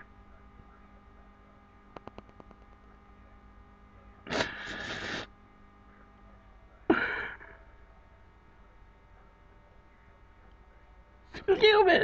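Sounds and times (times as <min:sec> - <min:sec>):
electrical mains hum: 0:00.0 - 0:12.0
faint clicks: 0:01.9 - 0:02.8.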